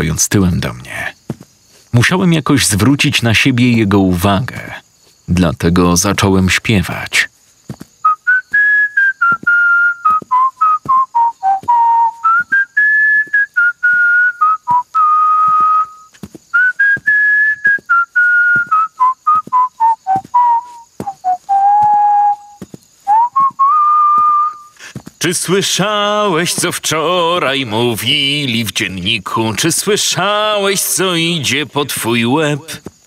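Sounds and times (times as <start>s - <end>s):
person whistling a tune: 8.0s - 24.8s.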